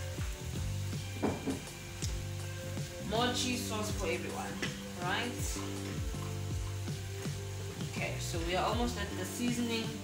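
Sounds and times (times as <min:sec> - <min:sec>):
background music with held tones: 0:00.0 - 0:10.0
food sizzling in a frying pan: 0:00.0 - 0:10.0.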